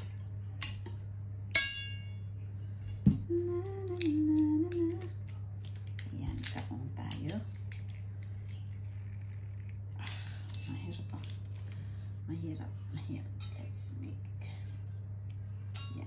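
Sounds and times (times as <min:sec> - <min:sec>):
steady low hum: 0:00.0 - 0:16.0
ringing clink: 0:01.5 - 0:02.7, 0:15.7 - 0:16.0
person humming: 0:03.1 - 0:05.4.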